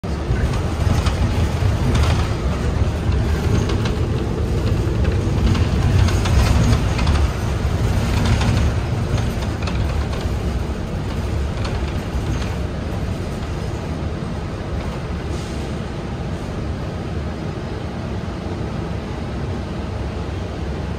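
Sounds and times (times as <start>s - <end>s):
bus engine and road rumble: 0.0s - 20.9s
light rattles and clicks: 0.4s - 13.7s.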